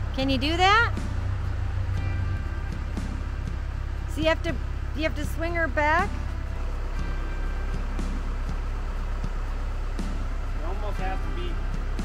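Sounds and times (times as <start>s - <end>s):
heavy machine engine rumbling: 0.0s - 12.0s.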